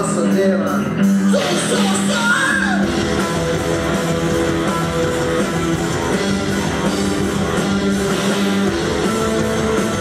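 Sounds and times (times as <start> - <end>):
bass guitar: 0.0 - 10.0
rock band playing: 0.0 - 10.0
strummed electric guitars: 0.0 - 10.0.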